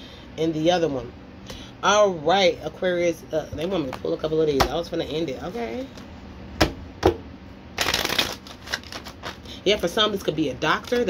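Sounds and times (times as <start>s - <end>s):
cards riffle shuffle: 7.8s - 9.5s.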